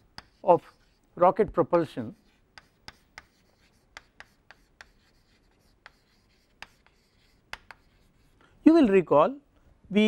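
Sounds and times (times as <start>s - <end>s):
chalk tapping and scratching: 0.0s - 1.1s, 1.8s - 8.5s.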